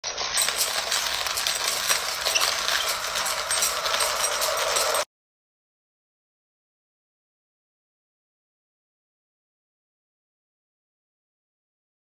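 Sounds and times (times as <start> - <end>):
small object rattling in hands: 0.0 - 5.1.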